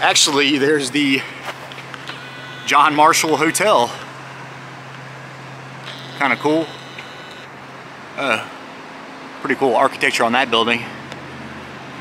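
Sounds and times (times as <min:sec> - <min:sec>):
low traffic hum: 0:00.0 - 0:12.0.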